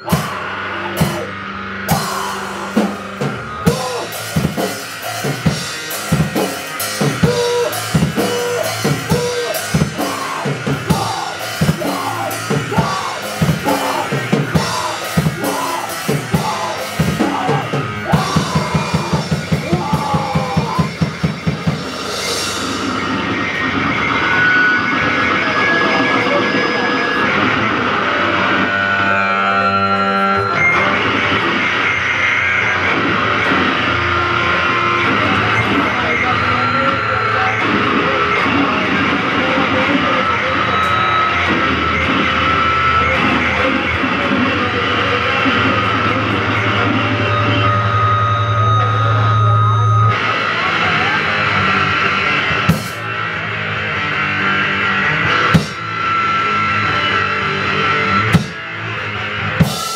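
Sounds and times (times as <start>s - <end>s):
distorted noise-punk: 0.0s - 59.9s.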